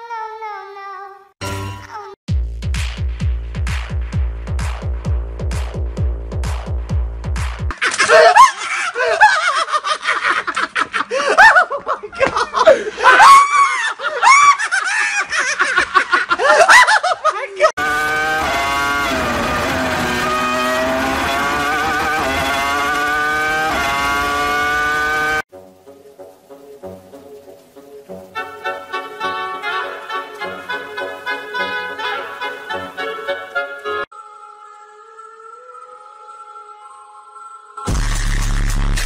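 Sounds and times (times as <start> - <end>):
laughter: 7.7 - 17.7
man yelling and shrieking: 13.0 - 14.6.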